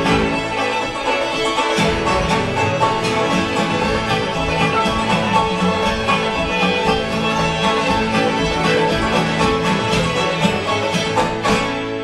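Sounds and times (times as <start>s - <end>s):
banjo: 0.0s - 12.0s
bass notes: 0.0s - 12.0s
fiddles playing folk tune: 0.0s - 12.0s
strummed guitar: 0.0s - 12.0s.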